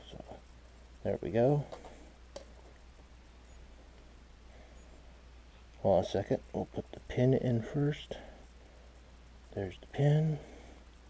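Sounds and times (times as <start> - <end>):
faint handling noise: 0.0 - 6.3
low steady hum: 0.0 - 11.0.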